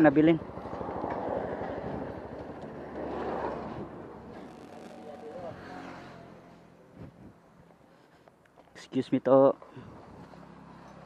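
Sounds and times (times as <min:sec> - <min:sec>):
motorcycle engine idling: 0:00.0 - 0:02.9.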